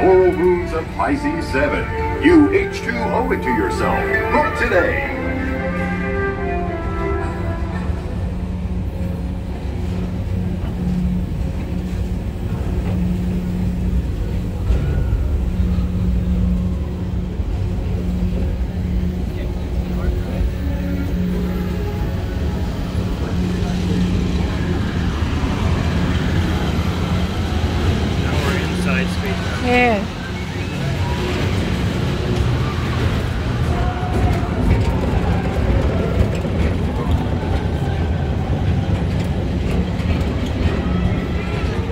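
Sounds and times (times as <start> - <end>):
ride car rumbling on track: 0.0 - 41.9.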